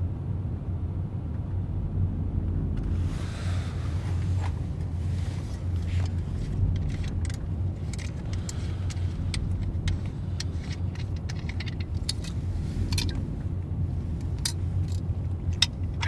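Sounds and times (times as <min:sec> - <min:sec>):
steady low rumble: 0:00.0 - 0:16.0
light clicks and rattles: 0:04.4 - 0:13.2.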